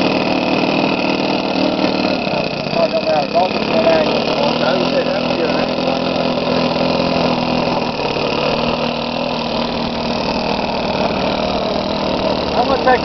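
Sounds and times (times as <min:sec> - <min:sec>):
model plane engine idling: 0:00.0 - 0:13.0.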